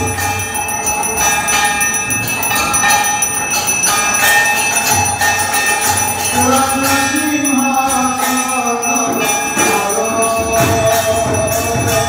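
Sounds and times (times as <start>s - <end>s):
temple bells ringing: 0.0s - 12.0s.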